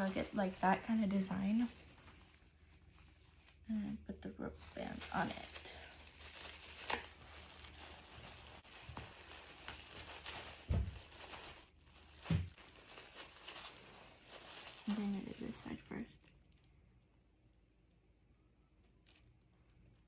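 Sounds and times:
plastic gloves crinkling: 0.0s - 20.0s.

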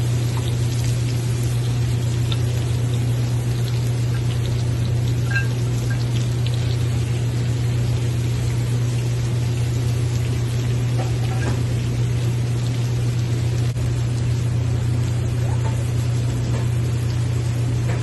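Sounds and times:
food sizzling in a frying pan: 0.0s - 18.0s
steady low hum: 0.0s - 18.0s.

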